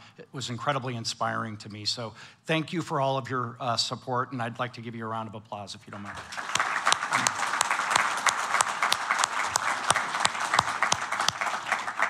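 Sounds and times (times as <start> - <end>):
audience applauding: 6.0 - 12.0
man clapping close to microphone: 6.0 - 12.0.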